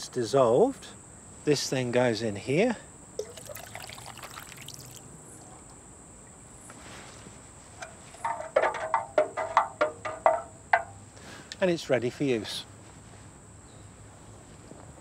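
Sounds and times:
liquid splashing into metal can: 3.2s - 5.0s
sharp ringing knocks: 8.2s - 11.0s.

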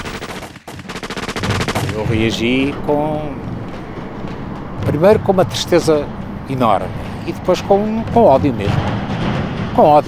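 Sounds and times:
rapid machine-gun fire: 0.0s - 2.7s.

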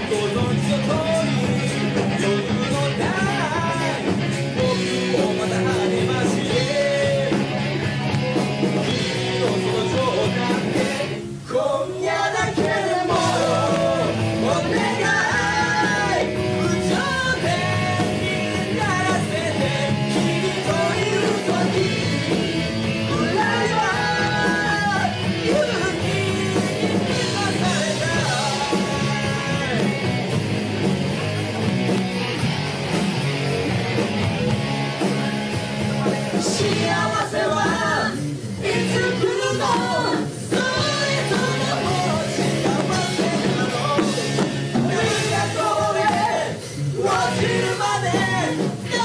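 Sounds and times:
man singing lead: 0.0s - 30.1s, 35.8s - 49.0s
bass guitar: 0.0s - 49.0s
drums: 0.0s - 49.0s
electric guitar: 0.0s - 49.0s
live rock band playing: 0.0s - 49.0s.

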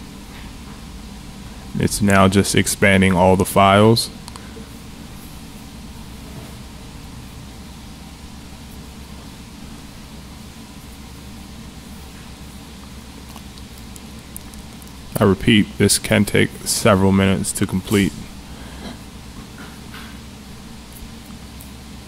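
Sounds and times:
steady hiss: 0.0s - 22.0s.

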